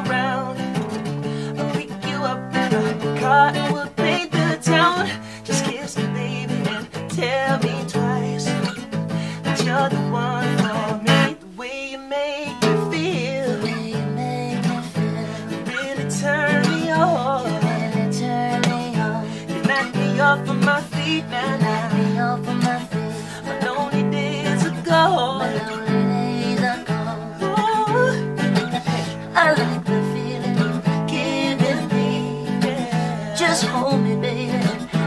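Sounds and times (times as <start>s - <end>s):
acoustic guitar strumming: 0.0s - 35.0s
man singing: 0.0s - 35.0s.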